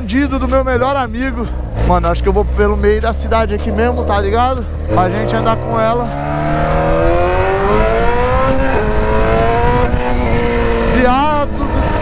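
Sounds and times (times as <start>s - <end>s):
motorcycle engine accelerating: 0.0s - 12.0s
wind rushing over microphone: 2.6s - 12.0s.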